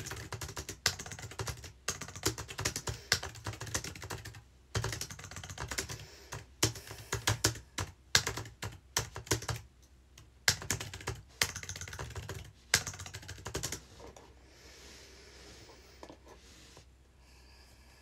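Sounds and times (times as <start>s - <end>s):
fast typing on keyboard: 0.0s - 13.8s.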